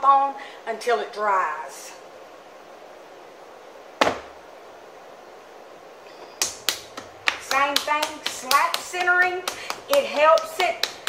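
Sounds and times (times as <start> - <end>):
low room hum: 0.0 - 11.0
wet clay slapped down: 4.0 - 4.3.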